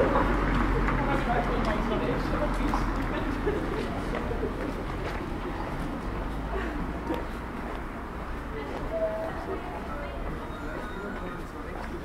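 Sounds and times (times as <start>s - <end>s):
passers-by talking: 0.0s - 12.0s
steady background noise: 0.0s - 12.0s.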